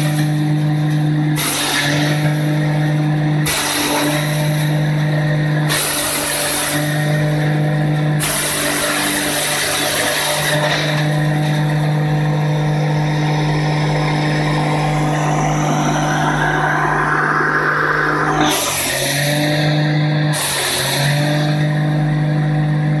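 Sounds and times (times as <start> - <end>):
hammer mill humming: 11.3 - 19.2.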